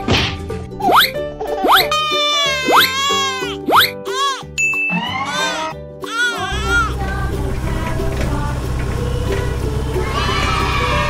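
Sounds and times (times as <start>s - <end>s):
children's background music: 0.0s - 11.0s
short high ding: 4.6s - 5.3s.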